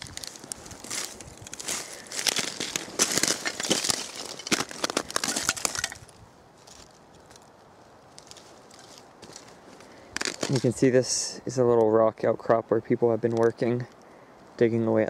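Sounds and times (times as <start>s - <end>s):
shale plates crunching and clinking: 0.0s - 7.5s, 10.2s - 10.8s.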